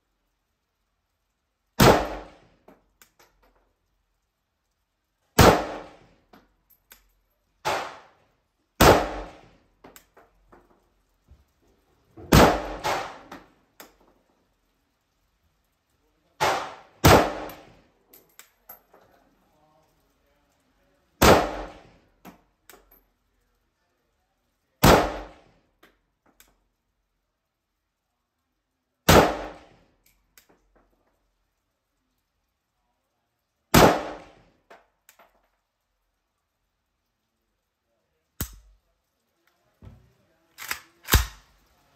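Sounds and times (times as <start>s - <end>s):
rifle shots with echo: 1.8s - 2.4s, 5.4s - 6.0s, 7.7s - 8.1s, 8.8s - 9.4s, 12.3s - 13.3s, 16.4s - 17.7s, 21.2s - 21.8s, 24.8s - 25.4s, 29.1s - 29.7s, 33.7s - 34.3s, 40.6s - 41.5s
faint metal clinks: 2.6s - 3.8s, 6.2s - 7.6s, 17.5s - 20.1s, 22.6s - 23.6s.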